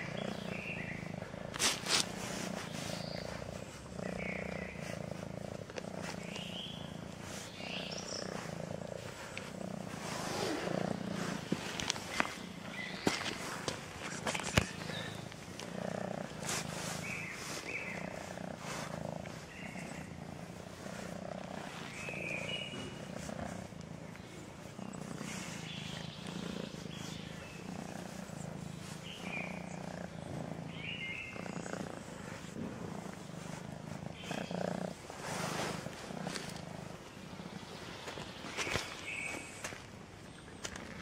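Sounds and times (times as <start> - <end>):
cat purring: 0.0 - 41.0.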